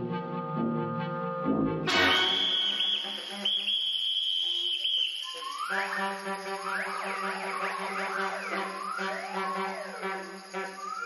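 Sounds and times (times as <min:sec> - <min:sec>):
wind ensemble playing: 0:00.0 - 0:04.0, 0:05.6 - 0:11.0.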